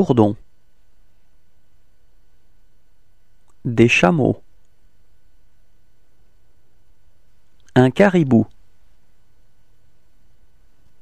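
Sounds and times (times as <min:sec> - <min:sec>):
thin steady tone: 0:00.0 - 0:10.8
background hiss: 0:00.0 - 0:11.0
low hum: 0:00.0 - 0:11.0.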